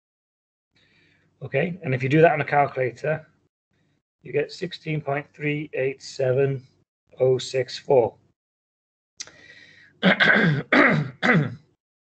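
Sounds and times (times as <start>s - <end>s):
man coughing: 10.0s - 11.7s.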